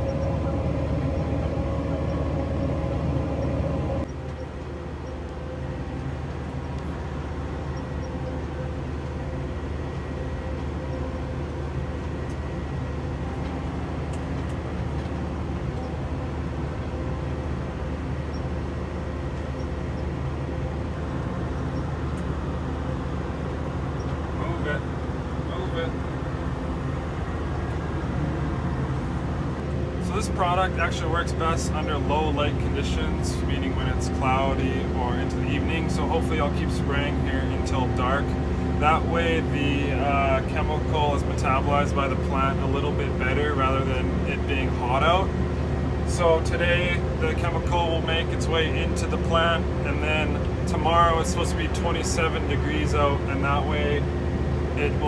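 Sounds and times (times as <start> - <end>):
farm machine engine drone: 0.0 - 55.0.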